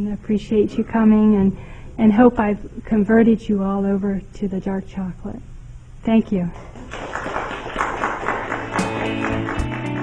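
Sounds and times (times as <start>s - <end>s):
guitar strumming: 8.6s - 10.0s.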